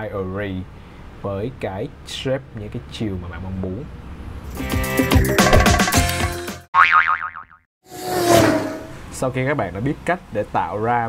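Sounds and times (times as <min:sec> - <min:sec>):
busy percussive jingle: 0:04.6 - 0:06.4
whoosh with held tone: 0:07.9 - 0:09.1.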